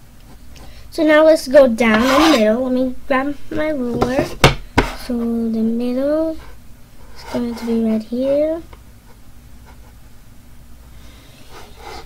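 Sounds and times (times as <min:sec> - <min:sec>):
low room hum: 0:00.0 - 0:12.0
pencil scratching along ruler: 0:01.9 - 0:02.5, 0:07.1 - 0:07.8, 0:11.5 - 0:12.0.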